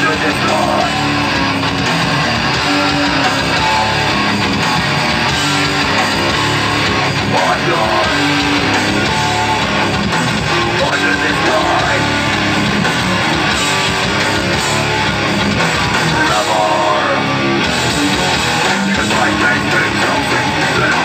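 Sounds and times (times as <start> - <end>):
distorted electric guitars: 0.0 - 21.0
punk band playing live: 0.0 - 21.0.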